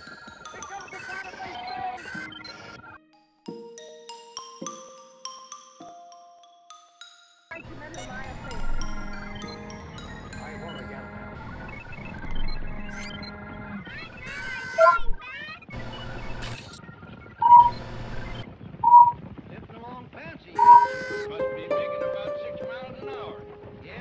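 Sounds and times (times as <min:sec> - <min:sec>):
soft melodic music: 0:03.0 - 0:07.1, 0:07.7 - 0:13.3, 0:20.6 - 0:24.0
robot warbling chirping beeps: 0:13.9 - 0:15.2, 0:17.4 - 0:19.2, 0:20.6 - 0:22.0.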